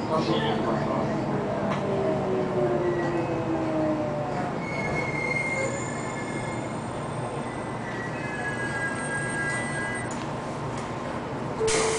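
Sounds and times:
train rumbling: 0:00.0 - 0:11.9
wheels squealing on rails: 0:02.6 - 0:10.2.

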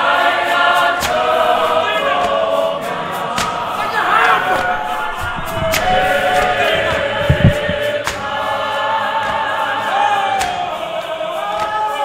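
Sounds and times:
choir singing a hymn: 0:00.0 - 0:12.0
low thuds: 0:03.5 - 0:08.5
sharp knocks: 0:03.6 - 0:08.2.

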